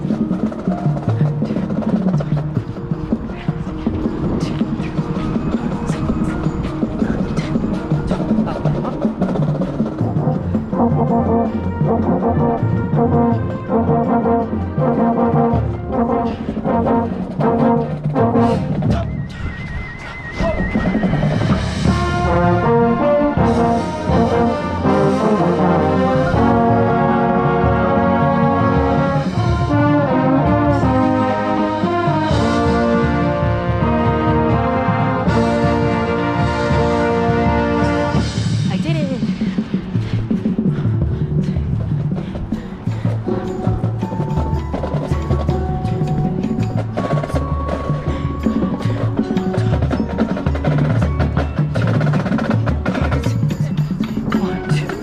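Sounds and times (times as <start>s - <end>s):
trombone: 0.0s - 19.2s, 20.4s - 39.5s
drumline percussion hits: 0.0s - 19.6s, 20.4s - 55.0s
brass section playing chords: 10.0s - 18.9s, 21.6s - 39.4s.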